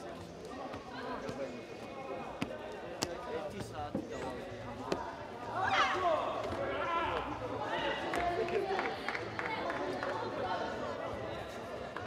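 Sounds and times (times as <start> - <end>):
voices echoing in hall: 0.0 - 12.0.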